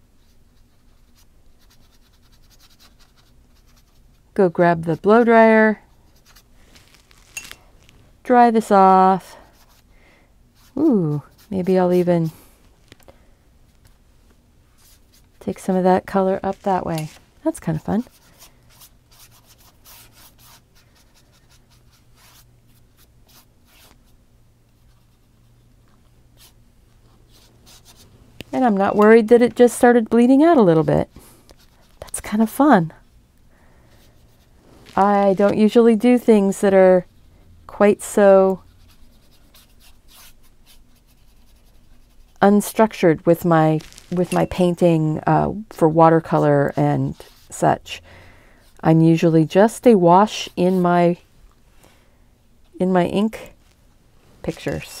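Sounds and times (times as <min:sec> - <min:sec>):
paintbrush strokes on paper: 0:16.4 - 0:24.1, 0:26.4 - 0:28.1, 0:38.6 - 0:42.5, 0:46.2 - 0:47.6.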